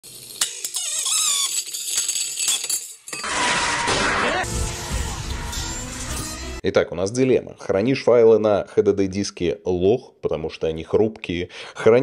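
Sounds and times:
loud rushing noise: 4.4s - 6.4s.

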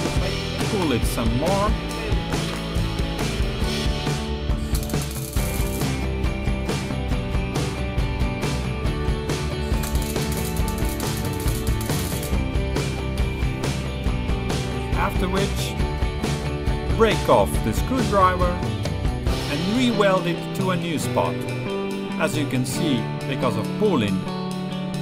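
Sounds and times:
music: 0.0s - 25.0s
welder crackling: 4.6s - 6.0s, 9.6s - 12.5s.

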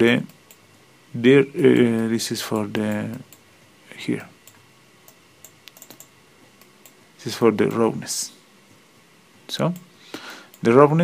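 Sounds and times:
light clicks of computer controls: 0.1s - 0.8s, 1.6s - 3.5s, 4.4s - 7.0s, 9.6s - 10.8s.

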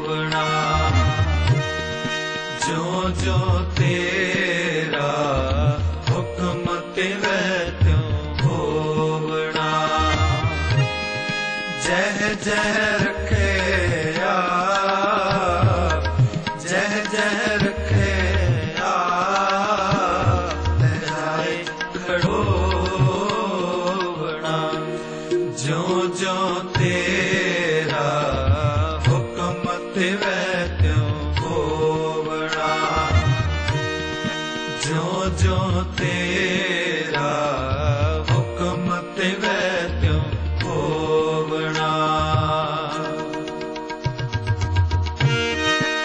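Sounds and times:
person singing ornamented notes: 0.0s - 43.8s
harmonium accompaniment: 0.0s - 46.0s
instrumental backing: 0.0s - 46.0s
low tabla strokes: 9.9s - 24.2s.

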